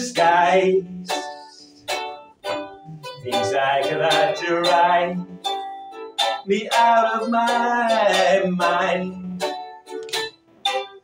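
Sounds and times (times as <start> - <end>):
person singing: 0.0 - 2.1, 2.7 - 5.6, 6.2 - 9.8
ukulele chord strums: 0.0 - 11.0.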